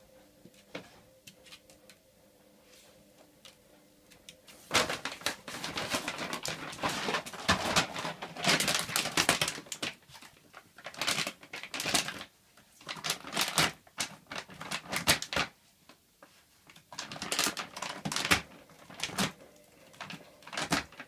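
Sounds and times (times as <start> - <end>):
dog chewing plastic bag: 4.7 - 15.5, 16.7 - 21.0.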